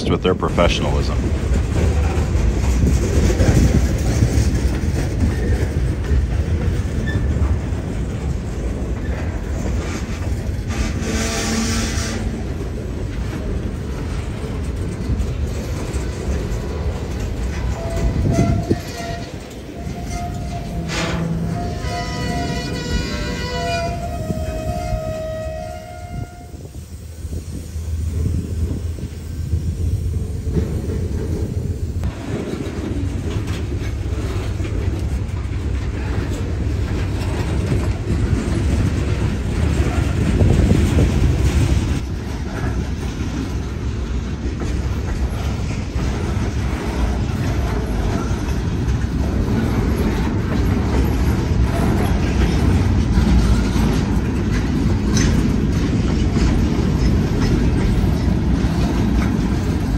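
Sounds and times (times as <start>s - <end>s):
freight cars rolling on track: 0.0s - 59.9s
locomotive horn: 10.7s - 12.4s, 17.8s - 26.8s.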